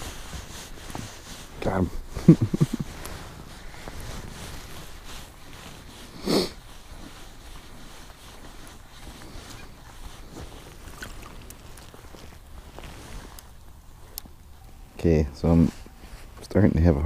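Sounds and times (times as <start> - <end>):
person sniffing: 6.0 - 6.8.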